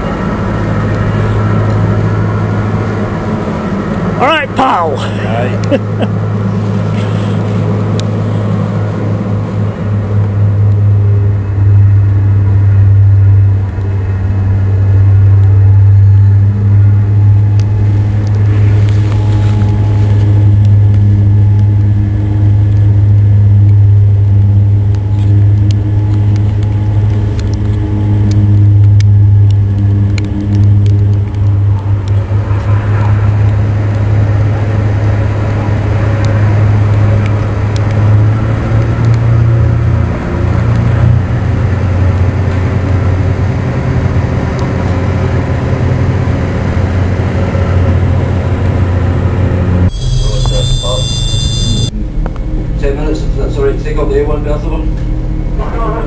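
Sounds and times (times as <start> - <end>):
diesel engines droning: 0.0 - 56.0.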